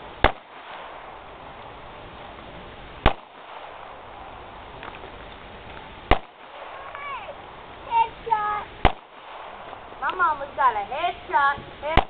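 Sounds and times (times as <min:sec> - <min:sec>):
handgun shots: 0:03.0 - 0:03.5.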